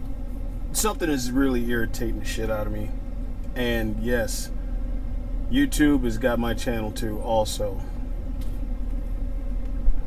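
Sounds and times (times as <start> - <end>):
vehicle rumble inside cab: 0.0 - 10.0.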